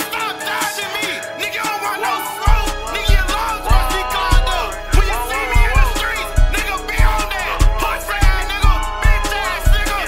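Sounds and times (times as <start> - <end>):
bass-boosted hip-hop beat: 0.0 - 10.0.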